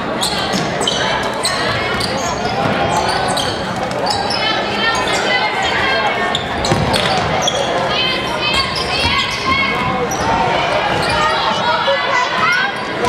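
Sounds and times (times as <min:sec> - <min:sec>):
sneakers squeaking on gym floor: 0:00.0 - 0:11.8
voices of players and spectators: 0:00.0 - 0:13.0
basketball bouncing: 0:06.6 - 0:07.5.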